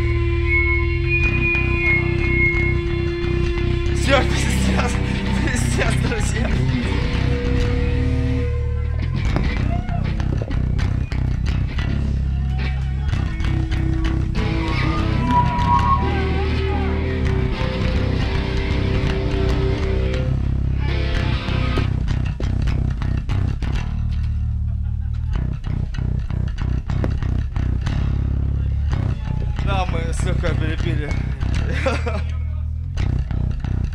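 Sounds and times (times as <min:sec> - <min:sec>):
heavy bass guitar: 0:00.0 - 0:33.9
drums beating: 0:09.1 - 0:12.0
rock band playing live: 0:13.2 - 0:20.3.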